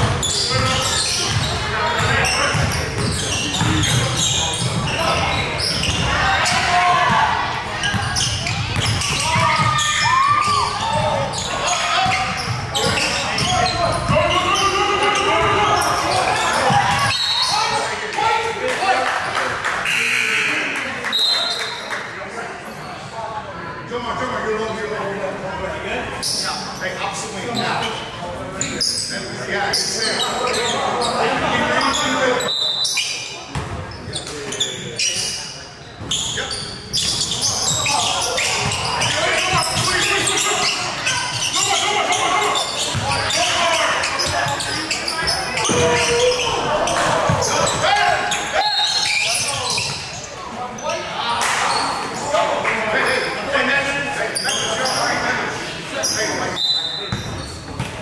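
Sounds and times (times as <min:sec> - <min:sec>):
voices shouting and chatter: 0:00.0 - 0:58.0
basketball bouncing on wooden floor: 0:45.6 - 0:46.0.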